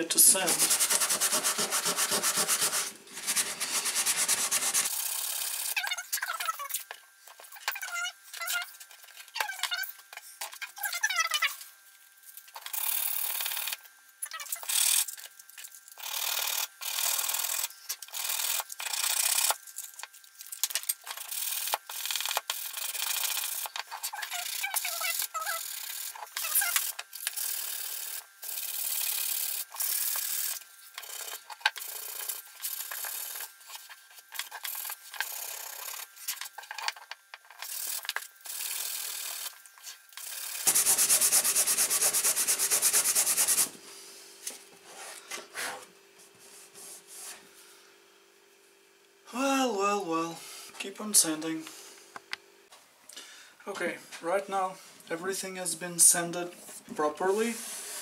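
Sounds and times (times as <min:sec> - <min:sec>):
sandpaper rubbing on wood: 0:00.3 - 0:04.9, 0:40.3 - 0:43.8.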